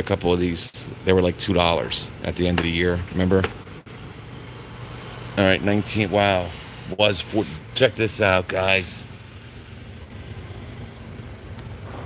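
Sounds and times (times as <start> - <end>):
air handling hum and hiss: 0.0 - 12.0.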